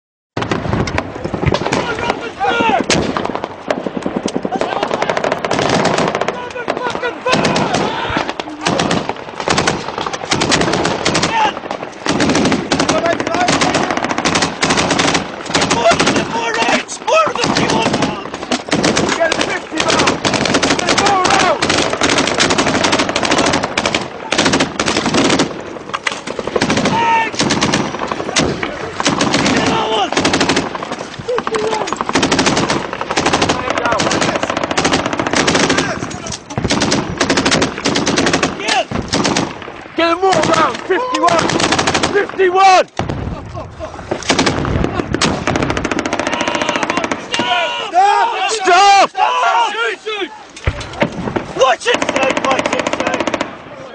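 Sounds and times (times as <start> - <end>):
people shouting: 1.6 - 2.9, 4.4 - 9.2, 10.2 - 11.7, 12.8 - 24.5, 26.6 - 36.3, 38.2 - 38.9, 40.0 - 42.9, 45.8 - 50.7, 51.5 - 53.9
automatic gunfire: 2.8 - 42.4, 44.2 - 47.5, 51.9 - 53.6.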